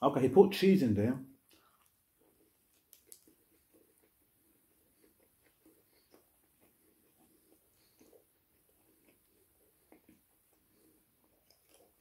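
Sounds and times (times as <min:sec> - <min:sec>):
faint chewing: 0:01.4 - 0:12.0.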